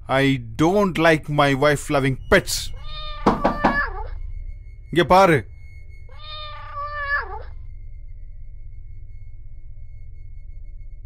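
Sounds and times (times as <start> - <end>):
low steady hum: 0.0 - 11.0
cat meowing: 2.7 - 4.2, 6.1 - 7.6.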